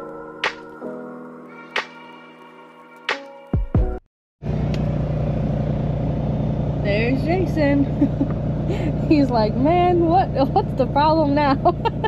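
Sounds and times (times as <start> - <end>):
diesel truck engine running: 4.4 - 12.0.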